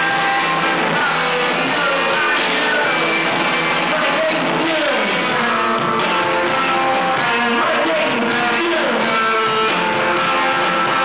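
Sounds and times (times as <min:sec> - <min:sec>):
electric guitar lead bending notes: 0:00.0 - 0:11.0
live rock band playing: 0:00.0 - 0:11.0.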